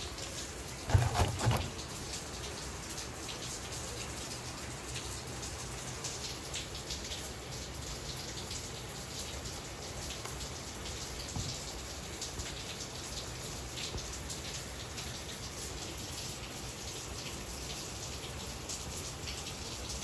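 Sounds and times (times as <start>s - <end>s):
steady rain falling: 0.0s - 20.0s.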